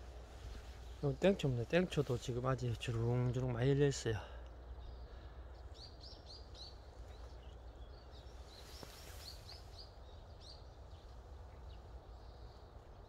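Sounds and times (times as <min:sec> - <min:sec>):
low outdoor rumble: 0:00.0 - 0:13.0
small bird chirps: 0:04.5 - 0:13.0.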